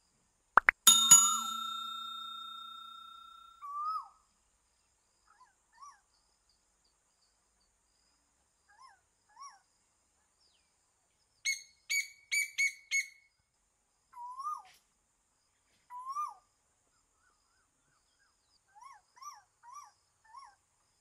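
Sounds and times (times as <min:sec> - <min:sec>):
whistled bird calls: 0:11.5 - 0:13.2.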